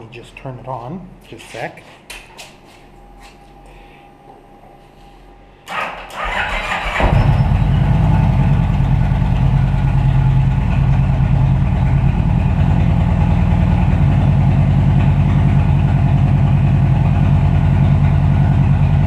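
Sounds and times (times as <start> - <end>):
motorcycle engine starter cranking: 5.7 - 7.6
motorcycle engine idling: 6.9 - 19.0.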